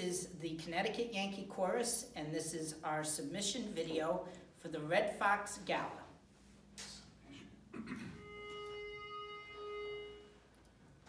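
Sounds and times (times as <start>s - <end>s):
pitch pipe note: 8.1s - 10.5s.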